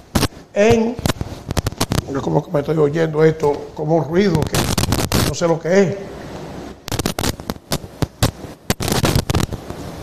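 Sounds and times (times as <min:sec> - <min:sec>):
microphone crackling and pops: 0:00.0 - 0:05.6, 0:06.2 - 0:10.0.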